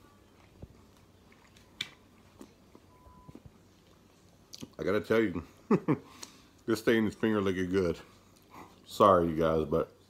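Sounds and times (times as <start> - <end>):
man chewing: 0.0 - 4.8, 8.1 - 8.9.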